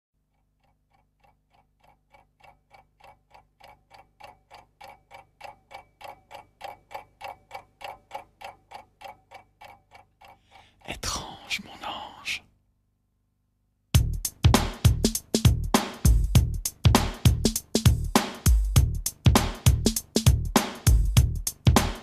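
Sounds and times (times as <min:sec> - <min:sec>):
steady ticking: 0:00.2 - 0:12.1, 0:14.0 - 0:22.0.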